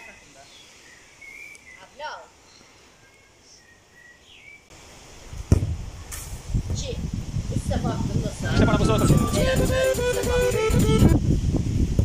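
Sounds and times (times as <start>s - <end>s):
football kick thud: 5.4s - 6.9s.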